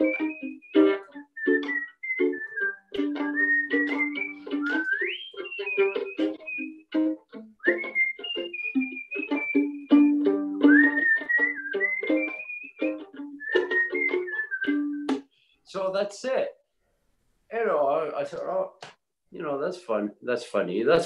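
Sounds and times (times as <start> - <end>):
violin plucked pizzicato: 0.0 - 15.2
man whistling a melody: 0.0 - 15.3.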